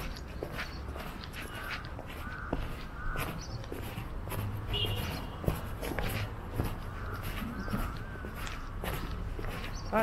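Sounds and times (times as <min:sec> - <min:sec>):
footsteps on paving blocks: 0:00.0 - 0:10.0
crow cawing: 0:01.4 - 0:03.9, 0:06.8 - 0:09.3.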